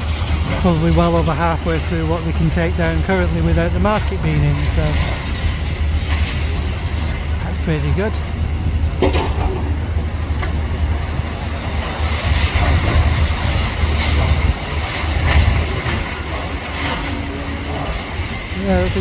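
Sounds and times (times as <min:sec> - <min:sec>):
excavator diesel engine rumbling: 0:00.0 - 0:19.0.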